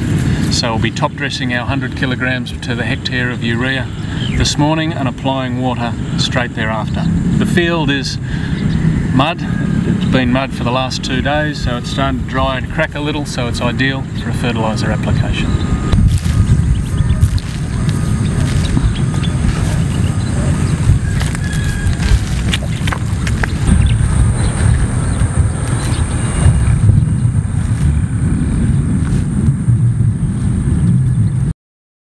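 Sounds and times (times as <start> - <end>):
wind buffeting microphone: 0.0 - 31.5.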